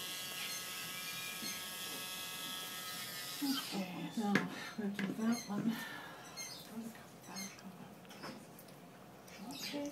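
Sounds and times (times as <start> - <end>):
parrot squeaks: 6.3 - 6.6, 7.2 - 7.6.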